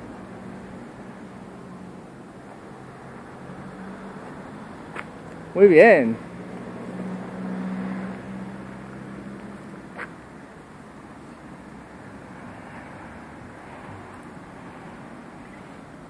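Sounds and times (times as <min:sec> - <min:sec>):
outdoor traffic noise: 0:00.0 - 0:16.0
vehicle engine humming: 0:00.0 - 0:16.0.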